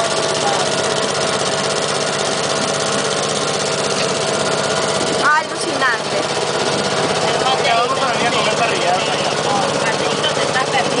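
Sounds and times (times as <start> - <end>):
boat motor running: 0.0 - 11.0.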